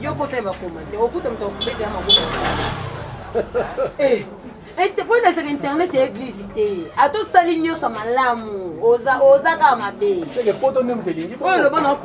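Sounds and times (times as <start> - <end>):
vehicle passing close by: 0.0 - 4.0.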